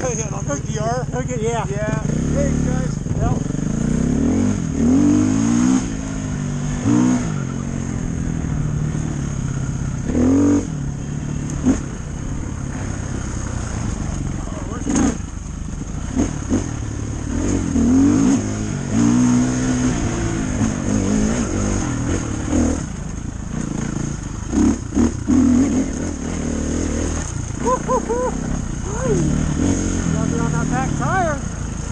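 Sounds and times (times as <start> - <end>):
dirt bike engine revving: 0.0 - 31.9.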